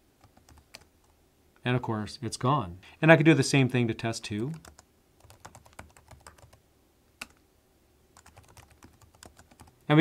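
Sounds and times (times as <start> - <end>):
typing on computer keyboard: 0.2 - 0.9, 4.5 - 6.6, 8.2 - 9.8.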